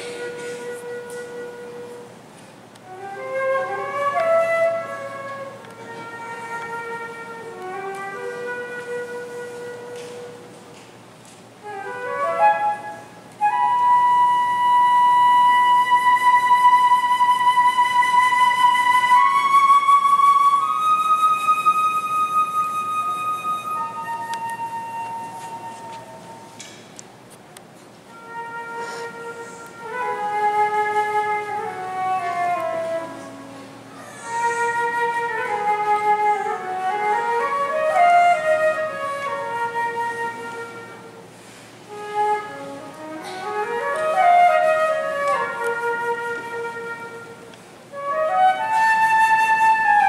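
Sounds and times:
solo flute melody: 0:00.0 - 0:10.9, 0:11.5 - 0:26.7, 0:28.0 - 0:50.0.

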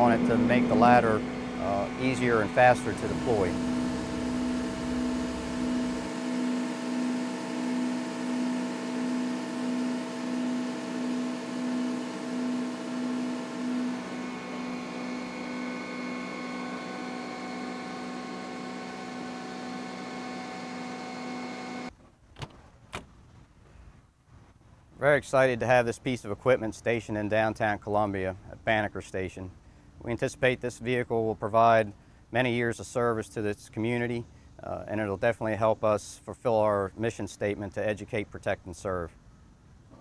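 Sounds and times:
ladder machinery humming: 0:00.0 - 0:21.9.

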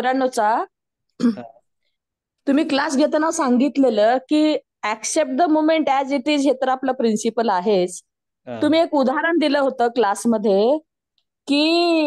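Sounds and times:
throat clearing: 0:01.2 - 0:01.6
woman speaking: 0:02.4 - 0:12.0.

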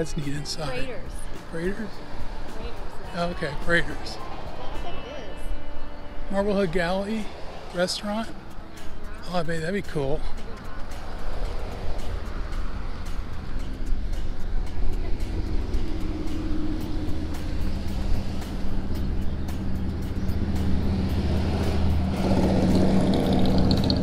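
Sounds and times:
cars passing close by: 0:00.0 - 0:24.0
motorcycle engine hum: 0:00.0 - 0:24.0.

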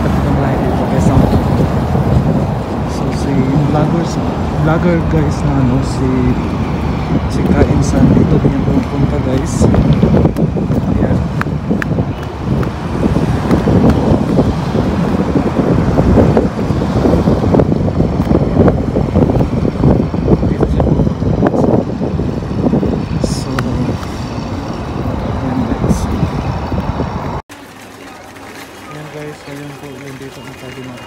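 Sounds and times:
wind buffeting microphone: 0:00.0 - 0:27.4.

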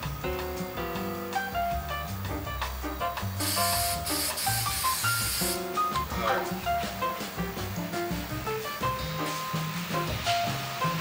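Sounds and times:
background music: 0:00.0 - 0:11.0
aerosol spray can hissing: 0:03.4 - 0:05.9.

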